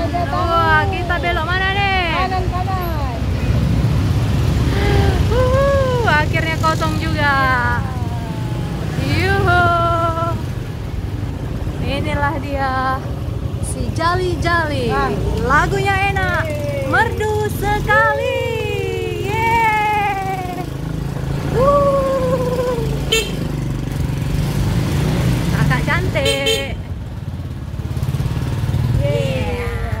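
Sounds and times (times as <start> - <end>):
motorcycle engine running: 0.0 - 30.0
high voice vocalising gliding tones: 21.4 - 23.1.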